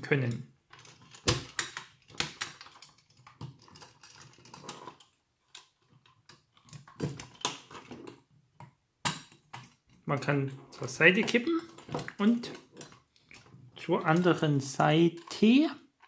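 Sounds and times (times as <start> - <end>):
metal toy model clicking and rattling: 0.2 - 8.1, 10.8 - 15.7.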